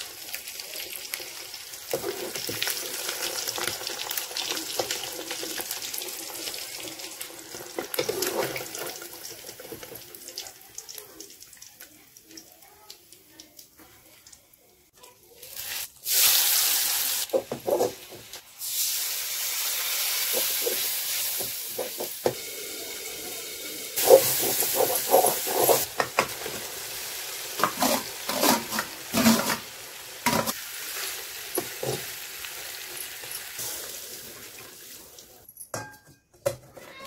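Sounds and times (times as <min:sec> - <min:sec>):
food sizzling in hot oil: 0:00.0 - 0:35.4
metal ladle scraping a pan: 0:24.0 - 0:26.1, 0:27.6 - 0:30.6.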